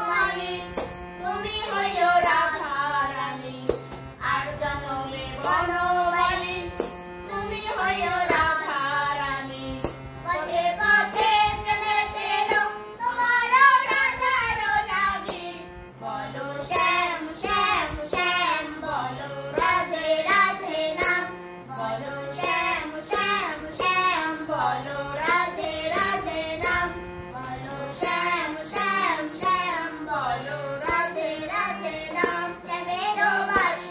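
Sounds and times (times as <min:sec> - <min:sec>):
harmonium: 0:00.0 - 0:33.9
woman and girl singing: 0:00.0 - 0:33.9.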